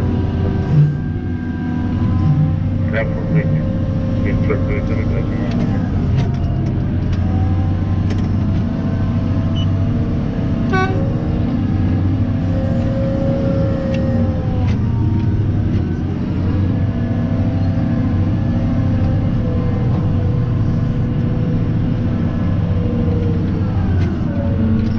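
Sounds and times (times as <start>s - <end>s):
whine: 0.0s - 8.6s
diesel engine low drone: 0.0s - 24.9s.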